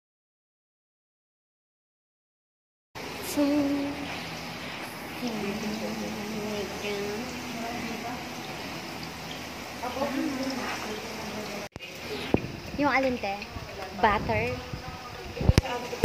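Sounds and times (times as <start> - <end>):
background hiss: 3.0 - 15.8
indistinct voices talking: 3.2 - 16.0.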